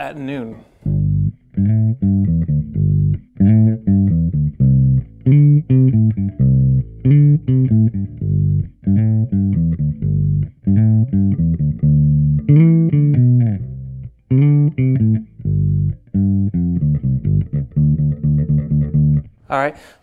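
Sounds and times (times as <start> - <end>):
plucked electric bass line: 0.8 - 19.4.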